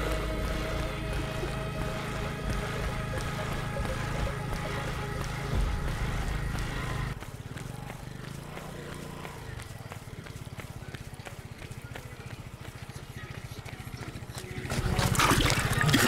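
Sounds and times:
background music: 0.0s - 7.2s
running footfalls: 0.0s - 16.0s.

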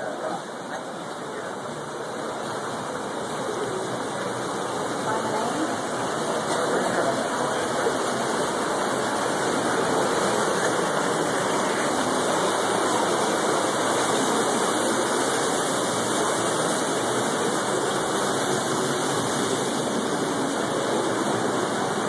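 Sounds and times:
creek rushing over rocks: 0.0s - 22.0s.

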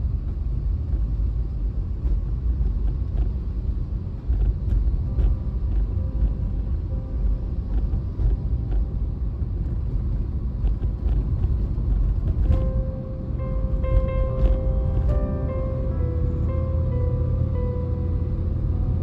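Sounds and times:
vehicle road and wind noise: 0.0s - 19.0s.

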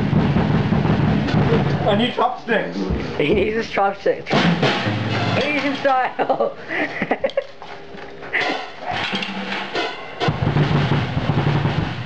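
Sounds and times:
drum kit played fast: 0.0s - 6.3s, 8.3s - 12.0s.

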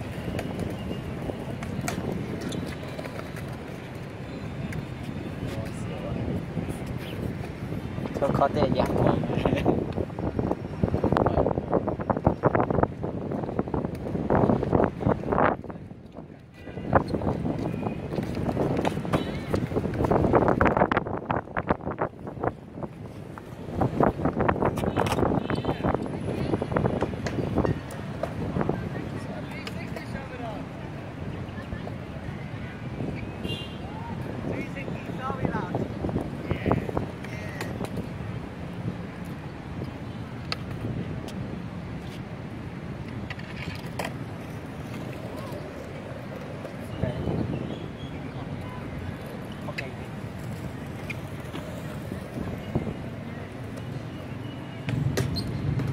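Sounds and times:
wind buffeting microphone: 0.0s - 43.3s, 43.9s - 54.1s
skateboard wheels rolling on concrete: 0.0s - 55.9s
faint voices: 43.9s - 54.9s.

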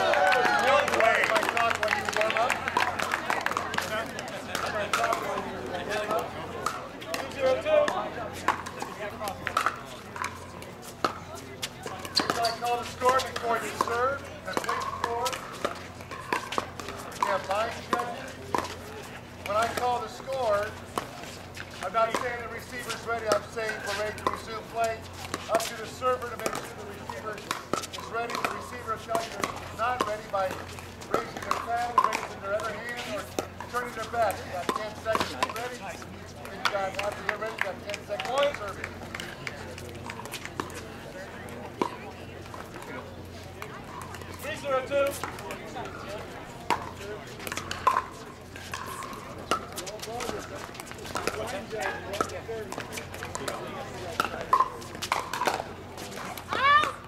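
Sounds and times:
chatter of voices: 0.0s - 57.0s
paddles striking plastic ball: 46.7s - 53.6s.

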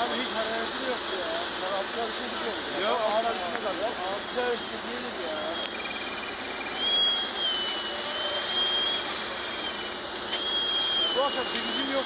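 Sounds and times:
high whistling tone: 5.4s - 12.0s
hissing roar of fire hosing: 6.7s - 12.0s.

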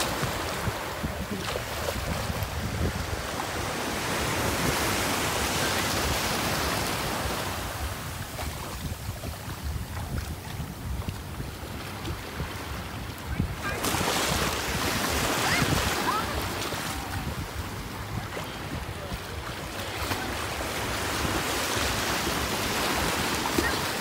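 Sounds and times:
small surf waves washing: 0.0s - 24.0s
wind on microphone: 0.0s - 24.0s.

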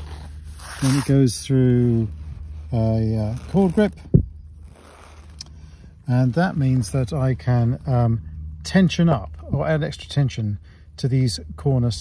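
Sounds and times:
faint rustling: 0.0s - 7.9s
cord grip thump: 4.0s - 4.4s.

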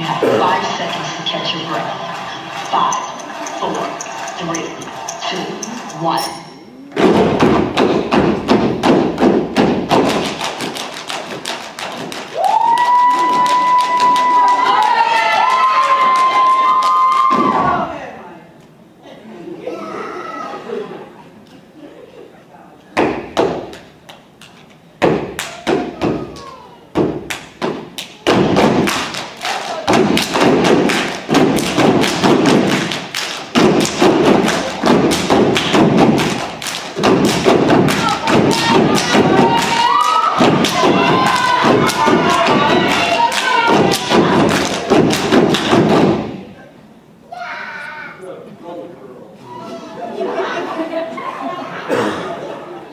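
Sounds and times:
feet stomping: 7.0s - 14.5s, 27.0s - 46.5s
hands clapping: 7.0s - 17.3s, 23.0s - 46.2s.

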